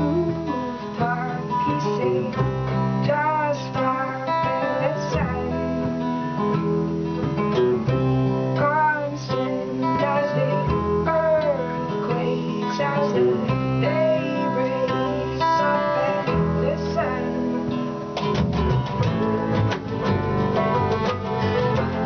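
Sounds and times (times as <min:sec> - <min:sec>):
picked banjo: 0:00.0 - 0:22.0
strummed acoustic guitar: 0:00.0 - 0:22.0
upright bass: 0:00.0 - 0:22.0
bowed fiddle melody: 0:19.0 - 0:22.0.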